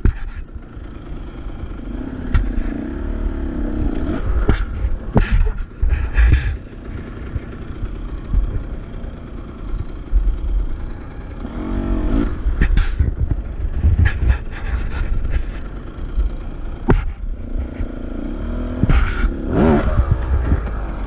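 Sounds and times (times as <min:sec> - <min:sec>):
dirt bike engine idling: 0:00.0 - 0:21.0
knocks and clatters: 0:02.3 - 0:02.8, 0:03.9 - 0:10.9, 0:12.5 - 0:18.0, 0:18.8 - 0:21.0.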